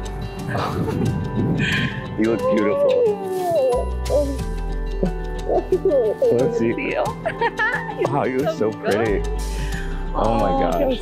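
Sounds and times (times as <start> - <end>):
background music with sustained tones: 0.0 - 11.0.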